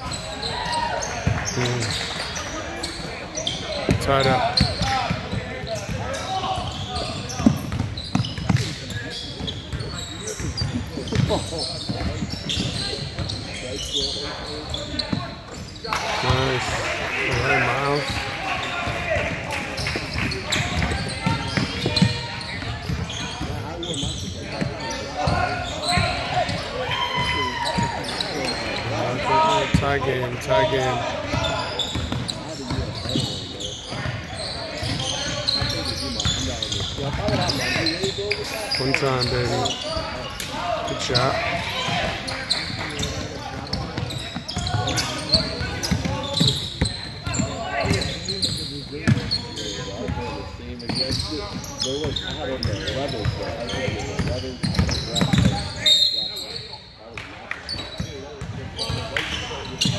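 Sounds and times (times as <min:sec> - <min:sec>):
voices echoing in gym: 0:00.0 - 0:59.9.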